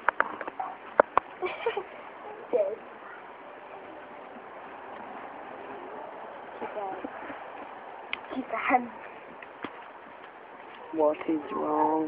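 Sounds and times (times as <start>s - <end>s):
low steady hiss: 0.0s - 12.0s.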